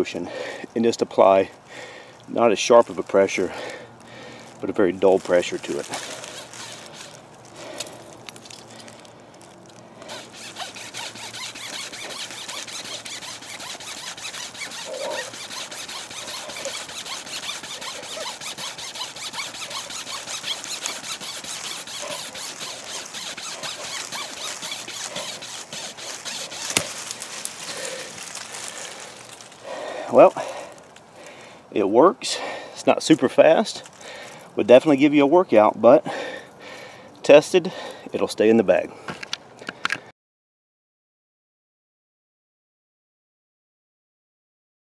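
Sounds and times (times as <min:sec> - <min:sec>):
wood cracking: 0:03.6 - 0:31.5
pocket saw rasping through wood: 0:05.0 - 0:09.0, 0:10.0 - 0:31.0.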